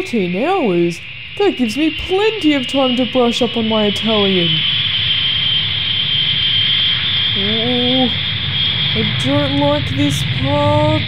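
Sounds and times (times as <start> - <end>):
constant high whine: 0.0 - 11.0
jet engines roaring: 0.0 - 11.0
person humming: 7.4 - 8.2.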